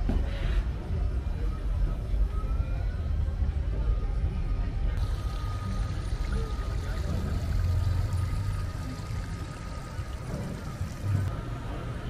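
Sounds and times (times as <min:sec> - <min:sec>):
water splashing down rocks: 0:05.0 - 0:11.3.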